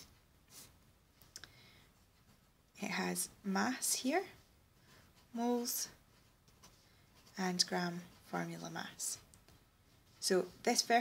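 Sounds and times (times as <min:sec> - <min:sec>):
person speaking: 0:02.7 - 0:04.5, 0:05.2 - 0:09.3, 0:10.0 - 0:11.0.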